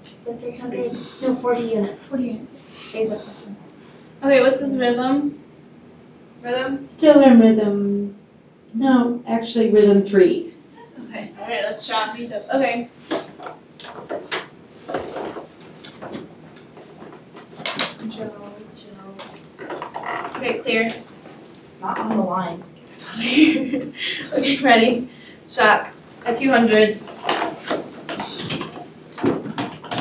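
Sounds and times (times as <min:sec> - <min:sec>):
equipment knocks and clicks: 0:27.2 - 0:30.0.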